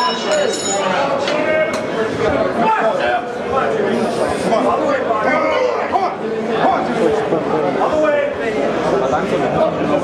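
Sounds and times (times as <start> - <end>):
people talking in echoing hall: 0.0 - 10.0.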